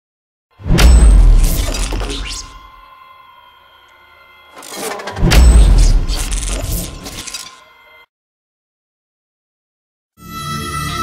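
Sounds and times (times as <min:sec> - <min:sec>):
booming bass hits: 0:00.6 - 0:02.5, 0:05.2 - 0:06.1
crackling shattering noise: 0:00.8 - 0:02.6.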